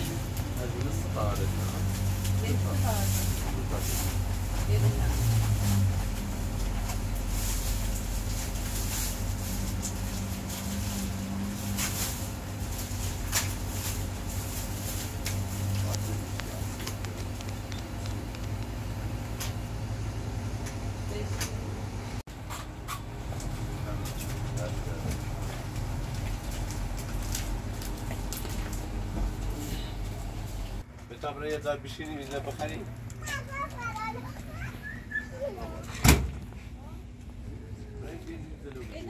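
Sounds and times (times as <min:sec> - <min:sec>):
plastic bags rustling: 0:00.0 - 0:17.6, 0:23.9 - 0:30.8
indistinct talk: 0:32.2 - 0:36.0.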